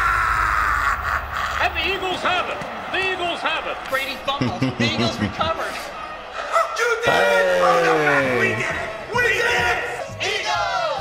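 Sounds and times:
man speaking: 3.1 - 5.9, 6.6 - 9.9.

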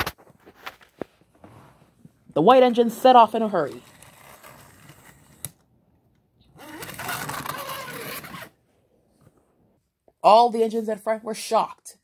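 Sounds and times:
toy train motor whirring: 6.6 - 8.4.

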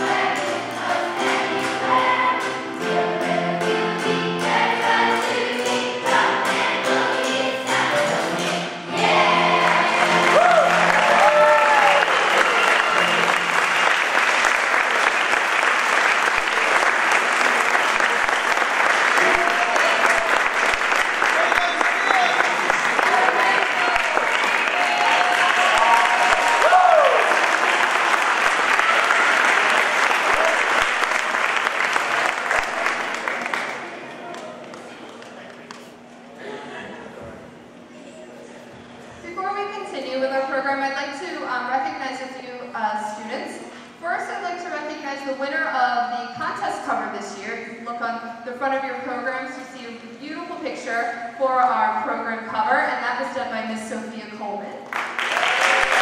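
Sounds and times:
children's choir singing: 0.0 - 11.0
people cheering: 9.1 - 34.8, 55.2 - 56.0
audience applause: 9.2 - 35.8, 54.9 - 56.0.

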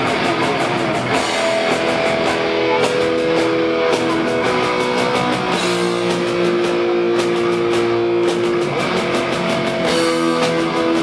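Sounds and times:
distorted electric guitars: 0.0 - 11.0
drums and cymbals: 0.0 - 11.0.

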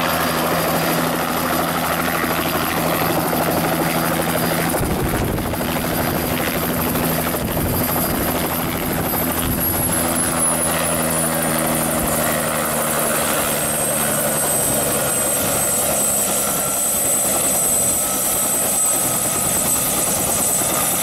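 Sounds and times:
helicopter rotor chop: 0.0 - 21.0.

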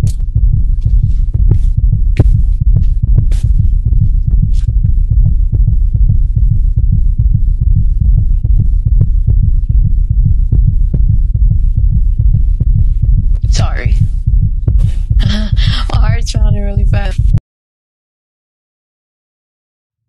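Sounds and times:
low heartbeat-like throbbing: 0.0 - 17.4.

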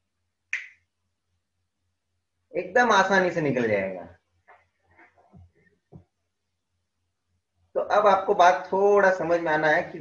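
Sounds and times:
finger snap: 0.5 - 0.9.

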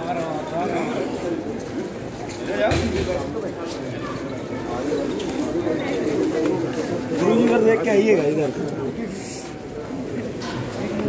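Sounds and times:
men talking and calling: 0.0 - 11.0.

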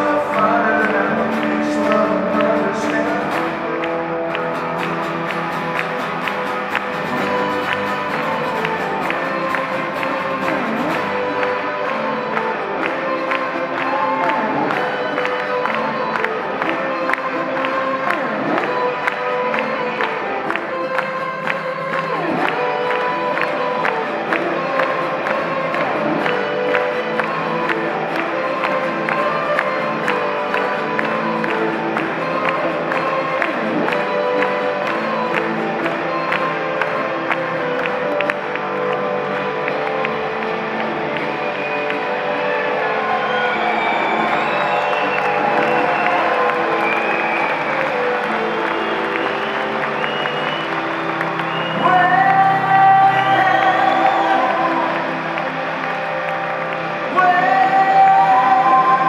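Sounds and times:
acoustic band playing: 0.0 - 59.0
audience clapping and cheering: 0.0 - 59.0.

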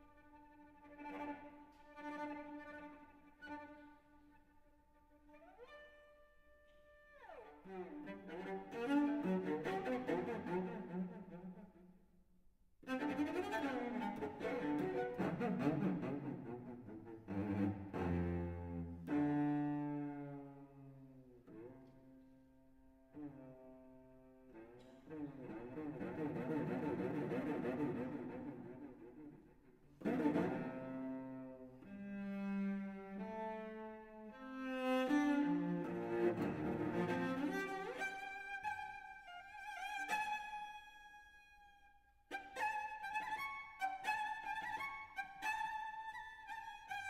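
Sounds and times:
solo cello bowed notes: 0.0 - 11.9, 12.8 - 47.0.

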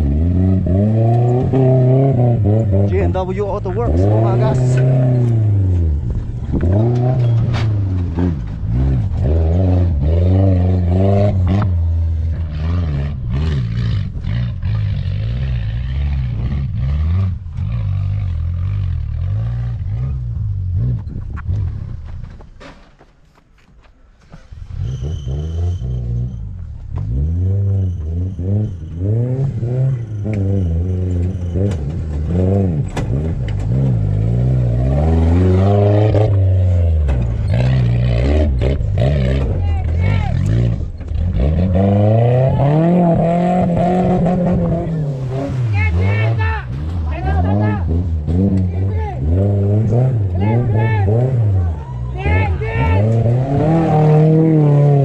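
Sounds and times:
pickup engine revving hard: 0.0 - 21.0, 27.0 - 55.0.

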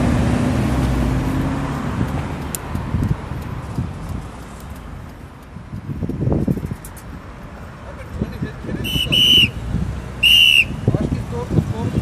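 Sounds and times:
shrill whistle blasts: 8.8 - 9.6, 10.2 - 10.8.

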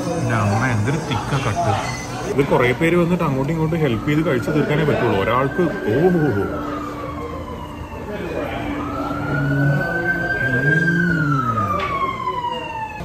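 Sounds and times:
murmuring voices: 0.0 - 13.0
siren wailing: 0.0 - 13.0.

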